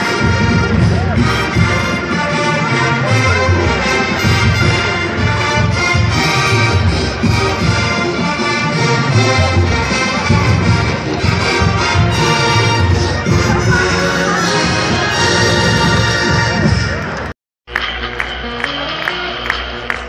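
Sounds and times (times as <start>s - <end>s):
marching band playing brass music: 0.0s - 17.3s.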